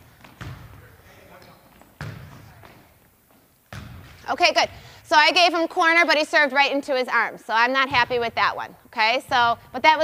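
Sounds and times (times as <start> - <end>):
volleyball thuds echoing: 0.0 - 3.0, 3.7 - 5.0, 7.8 - 10.0.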